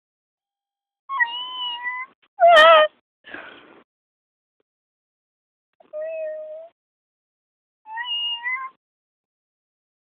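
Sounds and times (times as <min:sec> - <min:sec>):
cat meowing: 0:07.9 - 0:08.8.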